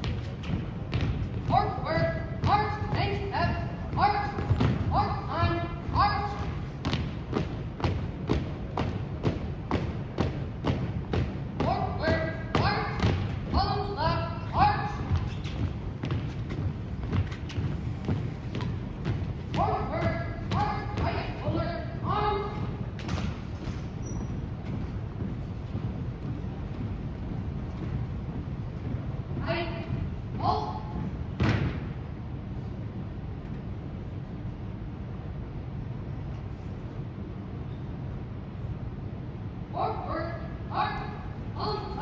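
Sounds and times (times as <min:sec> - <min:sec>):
marching footsteps on wooden floor: 0:00.0 - 0:32.0
low rumble in gym hall: 0:00.0 - 0:42.0.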